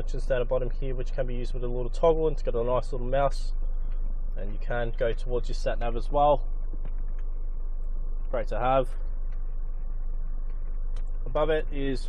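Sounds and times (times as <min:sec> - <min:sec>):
car engine idling hum: 0:00.0 - 0:12.0.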